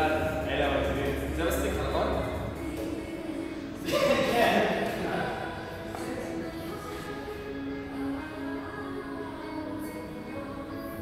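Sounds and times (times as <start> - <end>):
person's voice: 0.0 - 2.9, 3.8 - 6.7
background music: 0.0 - 11.0.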